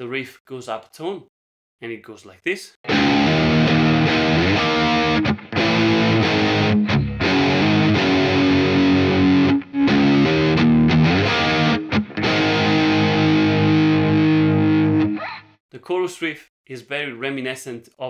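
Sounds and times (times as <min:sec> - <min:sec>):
distorted electric guitar riff: 0:02.9 - 0:15.6.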